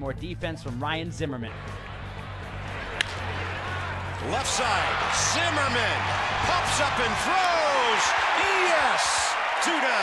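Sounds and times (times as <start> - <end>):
background music: 0.0 - 10.0
ballpark crowd noise: 1.5 - 10.0
bat hitting baseball: 2.9 - 3.3.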